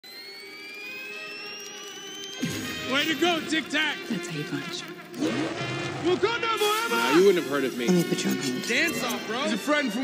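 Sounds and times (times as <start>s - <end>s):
faint hiss: 6.5s - 9.3s.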